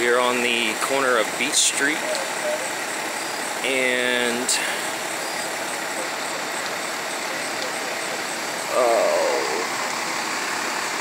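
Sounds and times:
fire engines running: 0.0 - 11.0.

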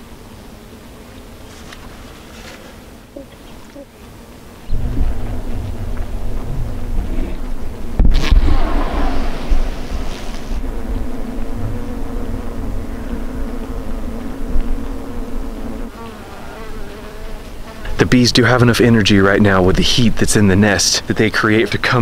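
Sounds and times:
honeybee colony buzzing: 0.0 - 22.0.

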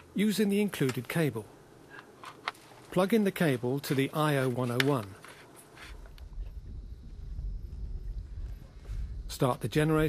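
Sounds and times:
faint rustle: 3.6 - 9.3
wind buffeting microphone: 5.9 - 10.0.

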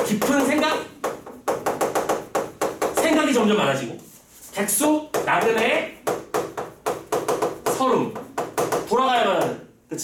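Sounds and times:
chalk tapping on chalkboard: 0.0 - 9.7.

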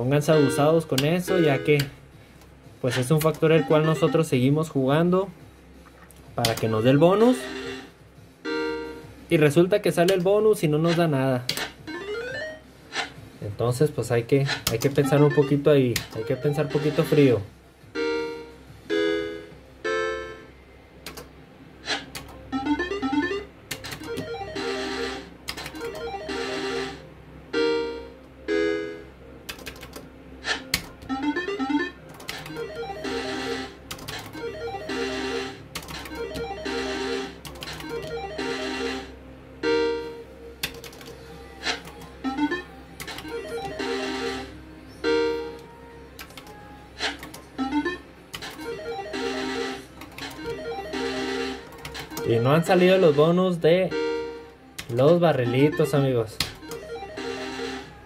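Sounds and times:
slot machine chimes and beeps: 0.0 - 2.0, 2.9 - 5.0, 6.4 - 9.5, 10.8 - 12.7, 14.8 - 20.8, 21.9 - 29.2, 30.5 - 40.3, 42.2 - 45.6, 47.4 - 58.0.

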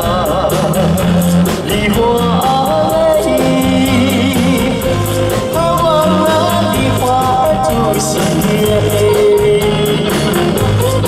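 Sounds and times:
live band playing cha-cha: 0.0 - 11.0
man singing: 0.0 - 11.0.

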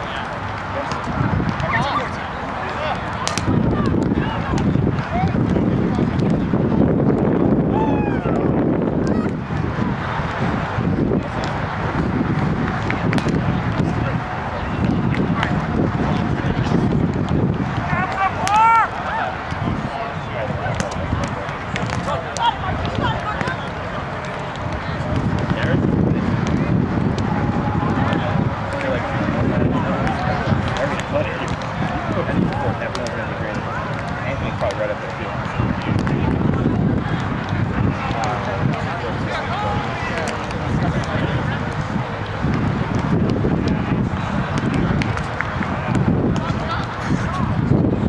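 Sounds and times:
faint voices: 0.0 - 48.0
wind rumble on microphone: 0.0 - 48.0.

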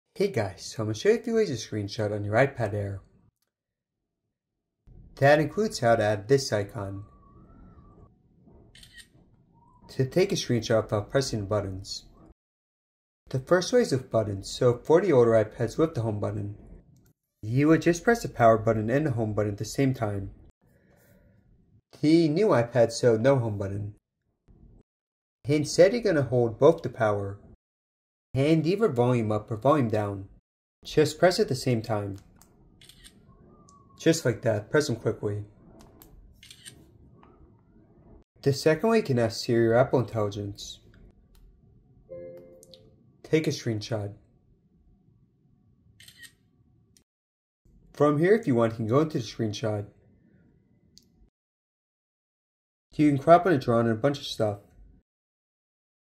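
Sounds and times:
faint camera shutter sound: 8.7 - 9.2, 32.2 - 33.3, 35.8 - 36.9, 46.0 - 46.5
camera shutter click: 36.4 - 36.8.

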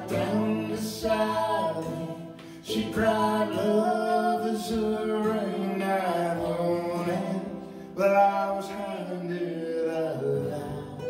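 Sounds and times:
man and woman singing: 0.0 - 11.0
mandolin: 0.0 - 11.0
strummed acoustic guitar: 0.0 - 11.0.

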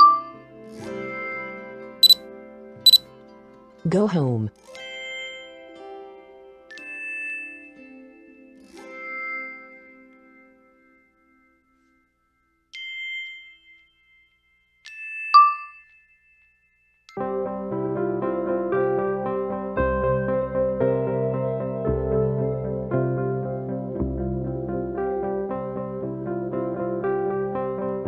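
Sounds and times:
background music: 17.2 - 28.0.

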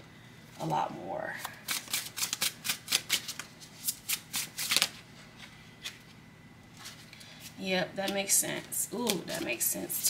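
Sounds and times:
cards being shuffled: 1.4 - 6.0.

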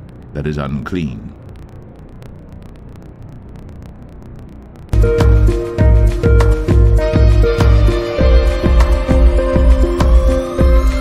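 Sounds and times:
light crackles: 0.0 - 5.0
low rumbling ambience: 0.0 - 11.0.

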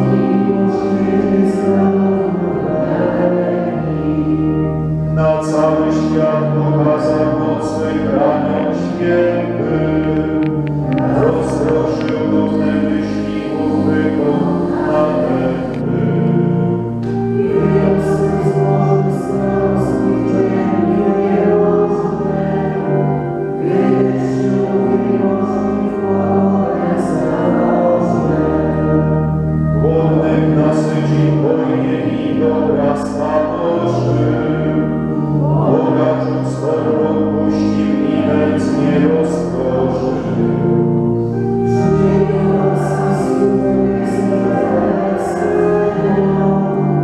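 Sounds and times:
group singing a hymn: 0.0 - 47.0.

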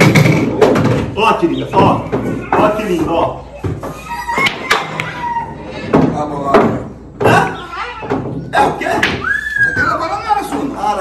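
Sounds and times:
pool balls knocking together: 0.0 - 5.2, 5.8 - 11.0.

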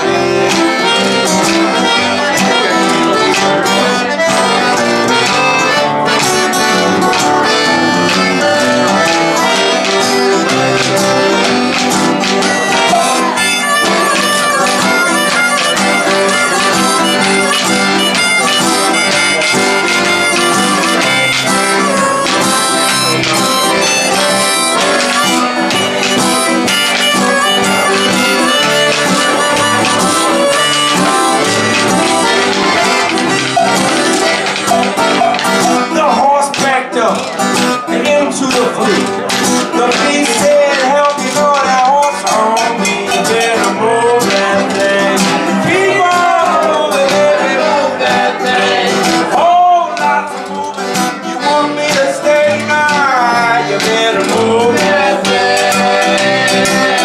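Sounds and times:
piano accordion: 0.0 - 36.1, 43.8 - 57.0
harmonica melody: 0.0 - 57.0
strummed acoustic guitar: 0.0 - 57.0.

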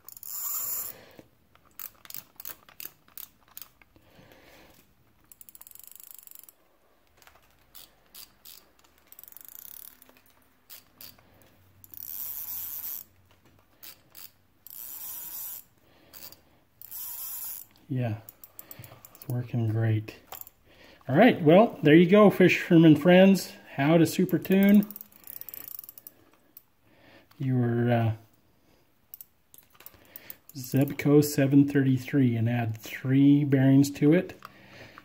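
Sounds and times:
fishing reel clicking: 0.0 - 1.0, 1.6 - 3.8, 5.2 - 6.6, 7.7 - 11.2, 11.8 - 13.1, 13.8 - 19.3, 24.4 - 26.7.

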